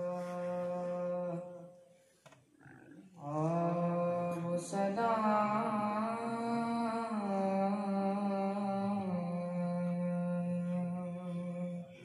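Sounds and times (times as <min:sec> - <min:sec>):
boy chanting into a microphone: 0:00.0 - 0:01.8, 0:03.2 - 0:12.0.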